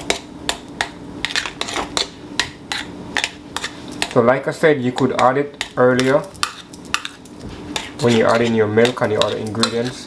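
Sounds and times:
stirring thick mashed potatoes: 0:00.0 - 0:10.0.

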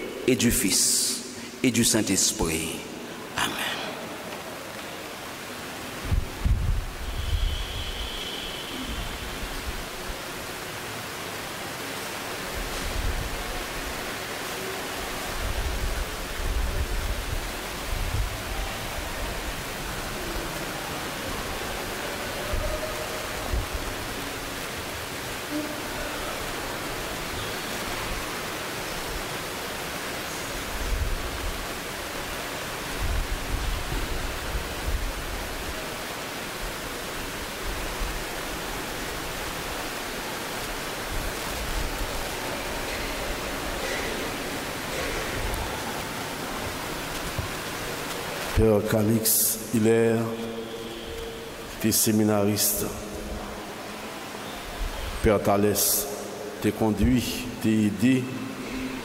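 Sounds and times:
steady background hiss: 0:00.0 - 0:59.0.

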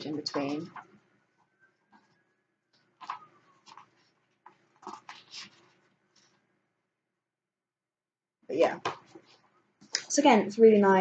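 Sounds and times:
book pages rustling: 0:00.2 - 0:06.6, 0:08.8 - 0:09.9.

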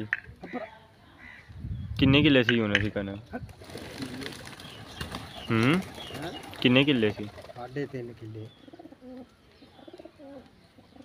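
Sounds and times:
pigeons cooing: 0:03.5 - 0:11.0.

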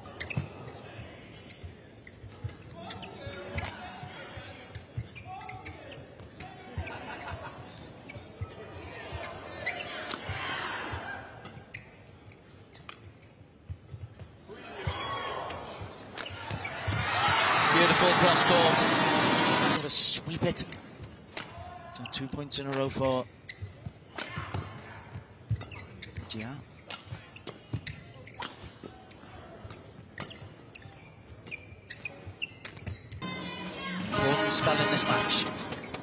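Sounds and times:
shoes squeaking on court: 0:00.0 - 0:03.8, 0:04.6 - 0:10.1, 0:11.4 - 0:17.0, 0:22.0 - 0:24.2, 0:25.4 - 0:33.3, 0:35.4 - 0:36.0
arena crowd noise: 0:00.0 - 0:11.6, 0:14.4 - 0:23.2, 0:33.2 - 0:36.0.

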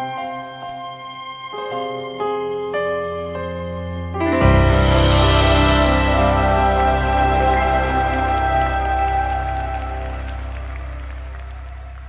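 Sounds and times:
band holding final chord: 0:04.2 - 0:12.0
audience applause: 0:04.9 - 0:12.0.

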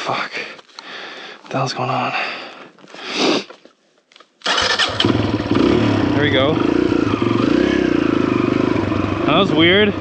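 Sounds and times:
dirt bike engine starting and running: 0:04.4 - 0:10.0.

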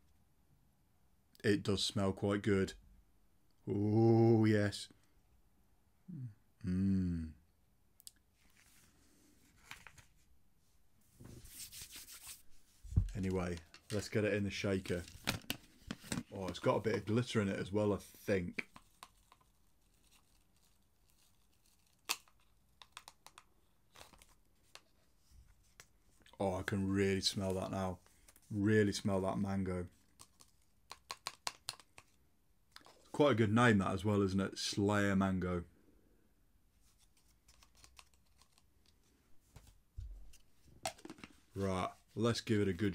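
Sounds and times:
rustling of packet handling: 0:36.8 - 0:39.1
powder sachet crinkling: 0:37.1 - 0:38.7.

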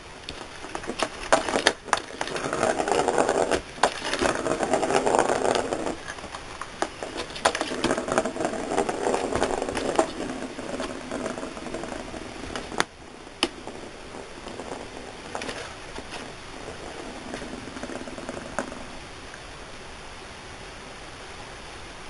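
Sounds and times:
ball rolling on plastic track: 0:00.0 - 0:19.1.

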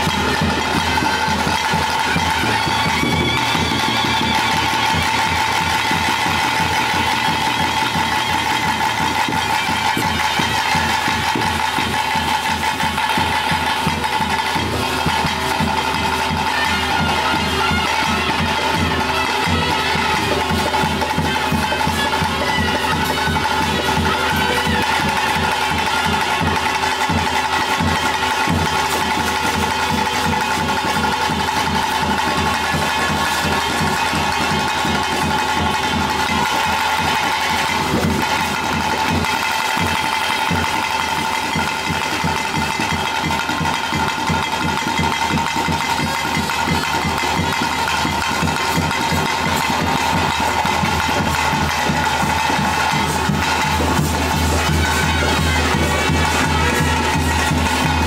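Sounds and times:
fast continuous drumming: 0:00.0 - 0:58.0
wind instrument drone: 0:00.0 - 0:58.0.

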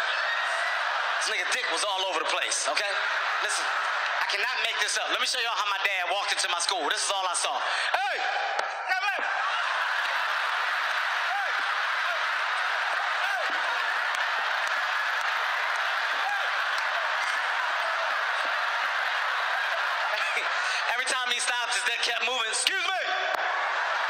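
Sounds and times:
audience laughing: 0:00.7 - 0:05.6, 0:12.8 - 0:22.0
audience applauding: 0:09.5 - 0:22.3.

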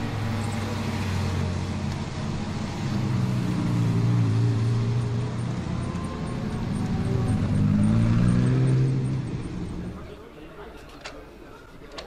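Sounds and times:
sports car accelerating away: 0:02.9 - 0:10.0.

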